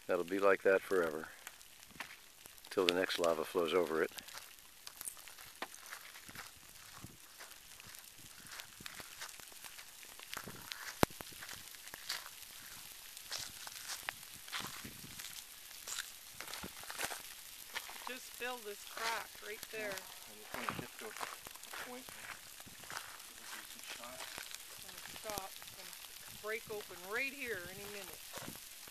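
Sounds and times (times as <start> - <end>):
lava crust crackling and ticking: 0.0 - 28.9
soft hiss: 0.0 - 28.9.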